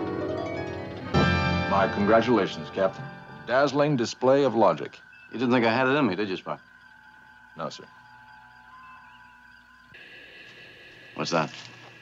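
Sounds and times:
television background music: 0.0s - 8.0s
bright high sustained tones: 0.0s - 12.0s.

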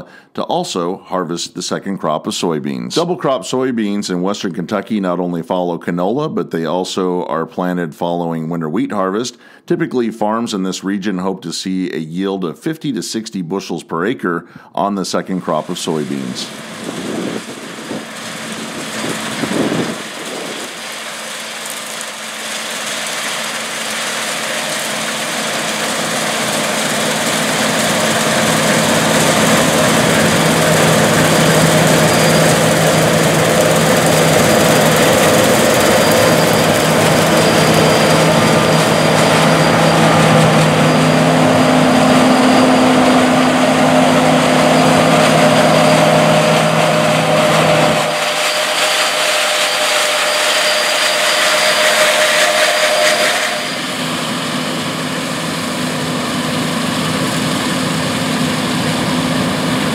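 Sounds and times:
combine harvester running: 15.4s - 59.9s.

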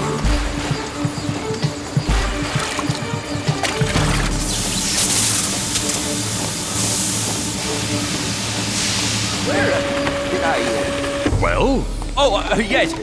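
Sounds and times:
electronic tone with warbling chirps: 4.1s - 5.9s
steam hissing in spurts: 4.4s - 12.0s.

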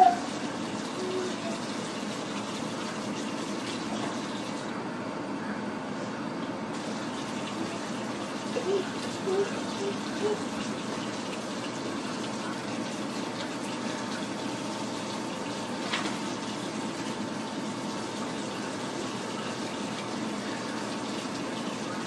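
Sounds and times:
faucet running into steel sink: 0.0s - 4.7s, 6.7s - 22.0s.

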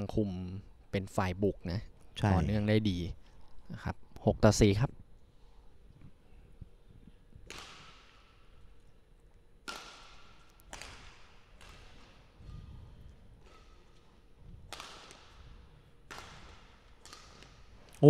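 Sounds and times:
racket hitting shuttlecock: 7.4s - 8.9s, 9.6s - 17.9s.

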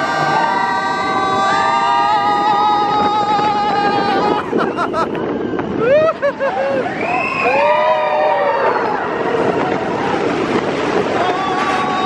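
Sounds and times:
roller coaster riders screaming: 0.0s - 12.0s
rushing wind: 0.0s - 12.0s.

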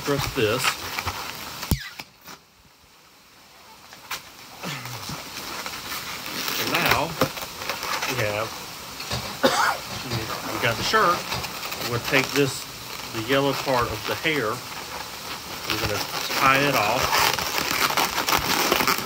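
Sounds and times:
balloon popping: 1.6s - 2.2s, 15.6s - 19.0s.

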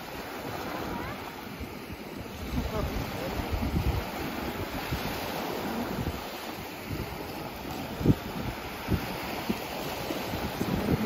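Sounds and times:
small waves breaking: 0.0s - 11.0s
wind buffeting microphone: 0.0s - 11.0s.

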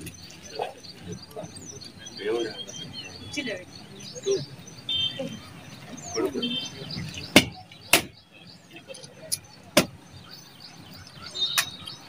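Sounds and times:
sharp knocks: 7.3s - 8.2s.

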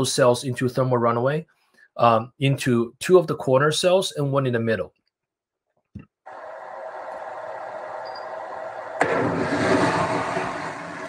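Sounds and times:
rush of gas venting: 6.3s - 11.0s.

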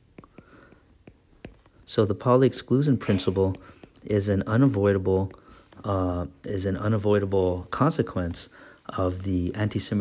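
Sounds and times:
stylus tapping on glass screen: 0.1s - 1.8s.

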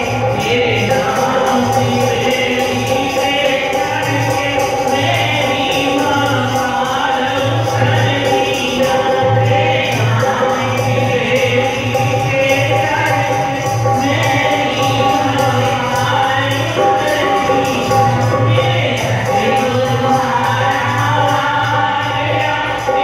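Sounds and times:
hand drum beat: 0.0s - 23.0s
harmonium drone: 0.0s - 23.0s
women singing devotional song: 0.0s - 23.0s.

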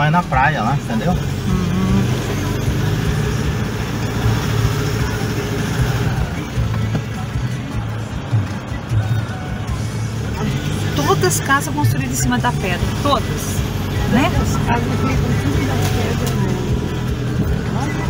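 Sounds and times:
car engine and tyres rumbling: 0.0s - 18.0s.

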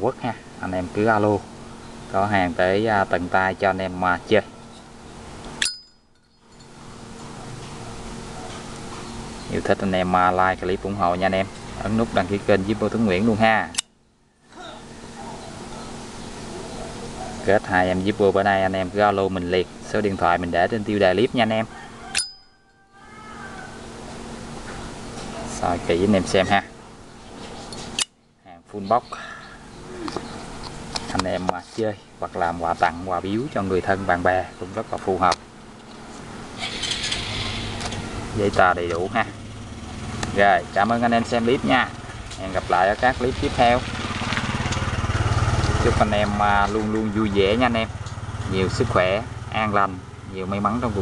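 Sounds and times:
metallic ringing ping: 5.6s - 6.8s, 22.1s - 23.1s
small engine puttering: 36.6s - 38.2s, 41.6s - 49.4s.

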